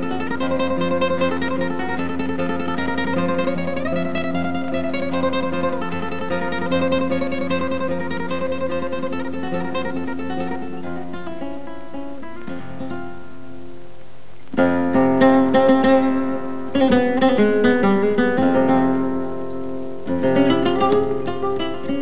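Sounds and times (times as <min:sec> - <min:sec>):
flamenco guitar playing: 0:00.0 - 0:22.0.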